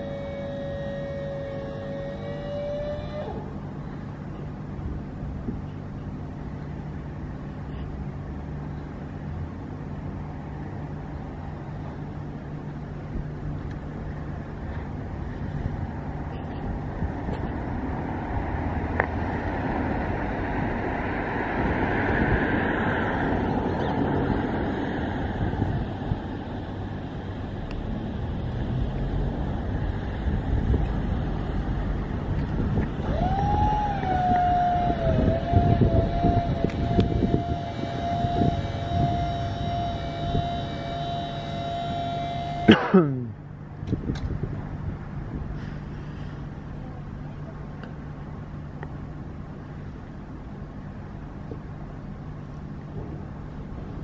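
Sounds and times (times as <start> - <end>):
electric motor whining: 0.0 - 3.6, 32.9 - 42.7
outdoor rumble: 0.0 - 54.0.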